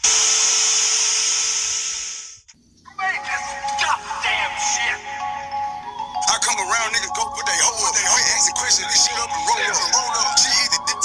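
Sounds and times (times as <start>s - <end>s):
loud steady hiss: 0.0s - 2.5s.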